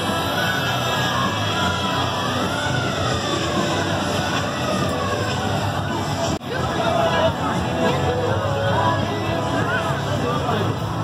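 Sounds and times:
crowd noise: 0.0s - 11.0s
music: 0.0s - 11.0s.

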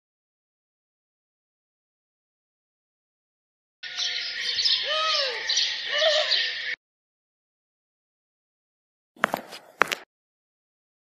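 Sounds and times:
flock of birds chirping: 3.8s - 6.8s
low arching bird calls: 3.8s - 6.8s.

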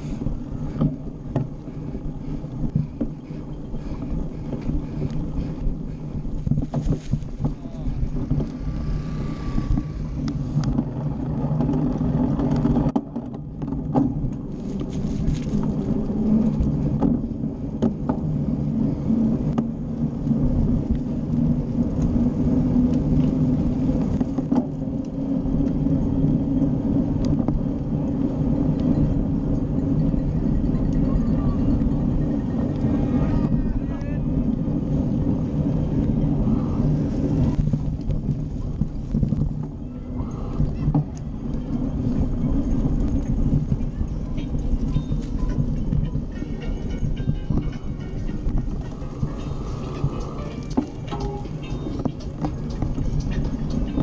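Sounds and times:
wind buffeting microphone: 0.0s - 54.0s
bike knocks and rattles: 0.3s - 9.0s, 9.7s - 15.8s, 16.7s - 18.4s.

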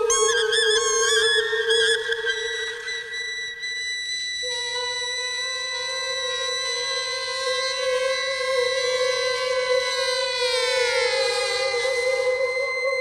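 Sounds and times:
instrumental music with held tones: 0.0s - 13.0s.

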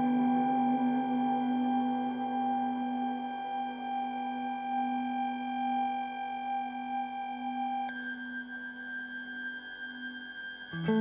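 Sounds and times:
electric guitar drone: 10.8s - 11.0s.

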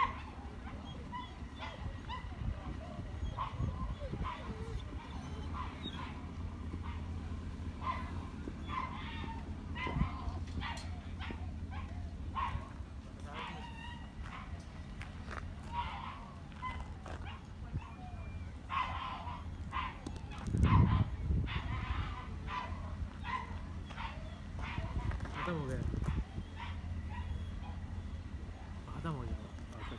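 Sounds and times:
dog barking and yipping: 0.0s - 29.9s.

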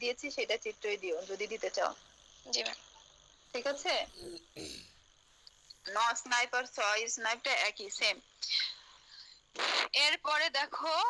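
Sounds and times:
small ticks: 5.4s - 5.8s.

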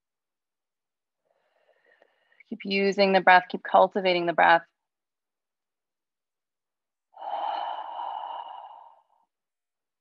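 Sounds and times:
woman breathing out: 7.2s - 9.3s.

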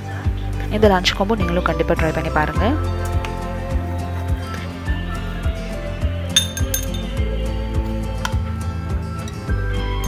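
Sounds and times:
background music with steady beat: 0.0s - 10.0s
spoon clinking against glass bowl: 6.4s - 7.2s.

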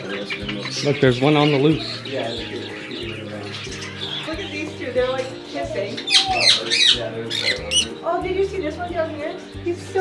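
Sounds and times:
parrots squawking: 0.0s - 9.6s.

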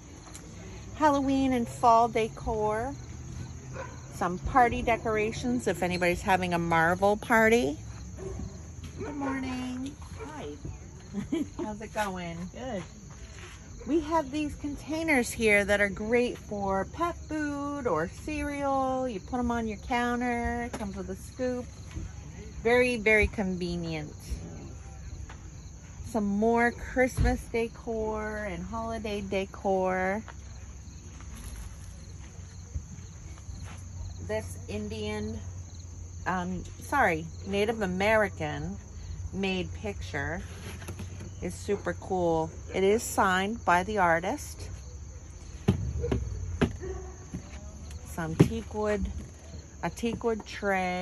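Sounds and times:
crickets chirping: 0.0s - 51.0s.

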